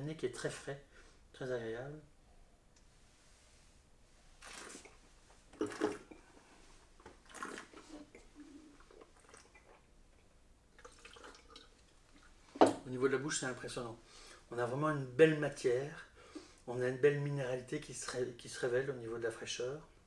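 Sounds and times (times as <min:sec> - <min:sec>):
person spitting into a jug: 0:04.4 - 0:06.4, 0:07.0 - 0:09.9, 0:10.7 - 0:11.8
person slurping wine: 0:04.4 - 0:06.5, 0:07.2 - 0:09.9.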